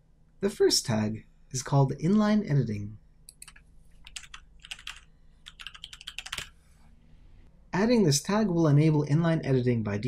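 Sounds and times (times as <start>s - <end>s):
typing on computer keyboard: 3.3s - 6.6s.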